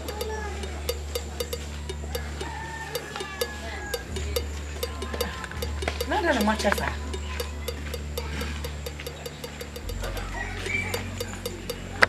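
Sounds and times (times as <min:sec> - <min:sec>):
fast even ticking: 0:00.0 - 0:12.0
low steady drone: 0:00.0 - 0:12.0.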